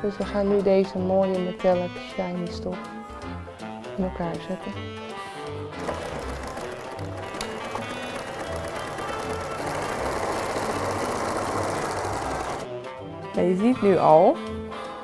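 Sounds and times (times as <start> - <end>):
background music with steady beat: 0.0 - 15.0
electric sewing machine running: 5.7 - 12.7.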